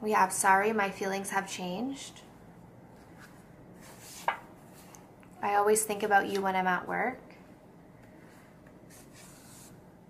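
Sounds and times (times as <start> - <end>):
cards sliding rustle: 8.7 - 9.8.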